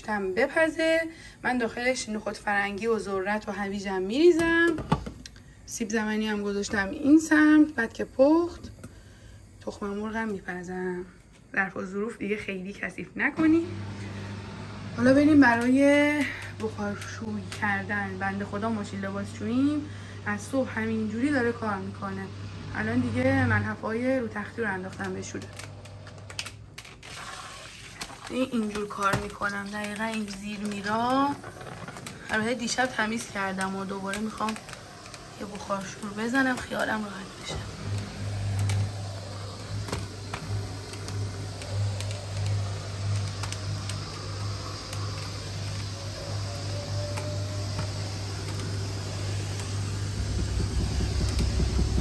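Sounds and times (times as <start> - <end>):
steam cleaner hiss: 27.0 - 52.0
low steady hum: 28.1 - 52.0.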